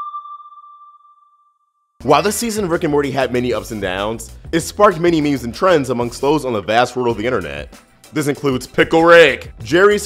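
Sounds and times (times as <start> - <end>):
electronic ping: 0.0 - 1.6.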